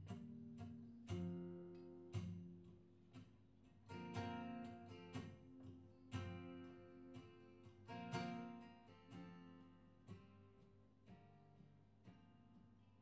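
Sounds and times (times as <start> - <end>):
acoustic guitars playing: 0.0 - 13.0.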